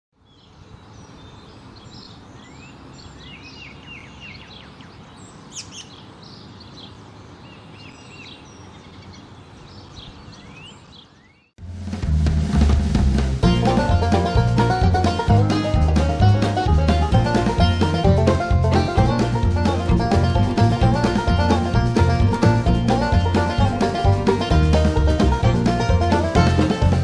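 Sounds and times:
low outdoor background noise: 0.1 - 12.0
birds chirping: 0.2 - 11.6
bluegrass banjo music: 12.3 - 27.0.

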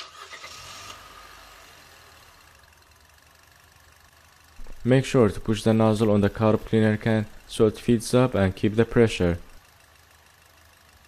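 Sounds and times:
car engine starting and idling: 0.0 - 11.0.

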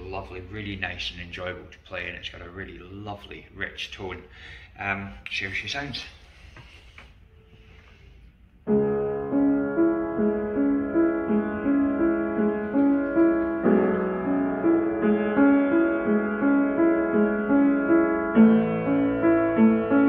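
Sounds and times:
upright piano playing: 8.6 - 20.0.

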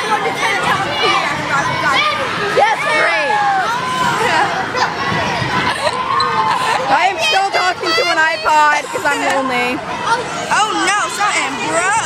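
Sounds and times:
girls' high-pitched voices: 0.0 - 12.0.

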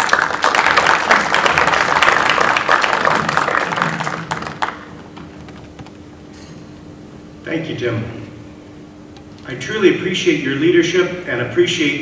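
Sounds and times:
audience applauding: 0.0 - 5.6
steady low hum: 0.0 - 12.0.

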